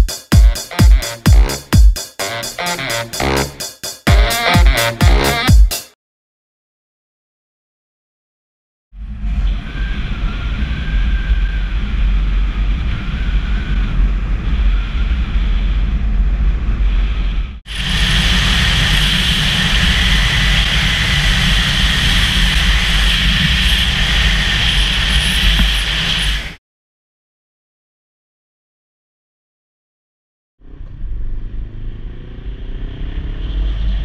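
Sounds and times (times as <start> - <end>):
wind rumble on microphone: 9.0 - 26.6
motorcycle running: 17.7 - 25.7.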